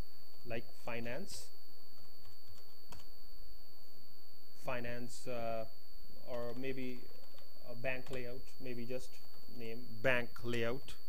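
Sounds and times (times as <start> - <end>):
high-pitched whine: 0.0 - 11.0.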